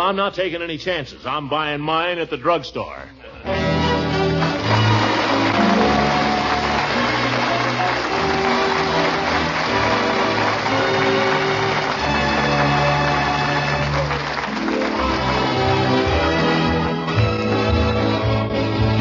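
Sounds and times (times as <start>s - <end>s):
orchestra playing held chords: 3.5s - 19.0s.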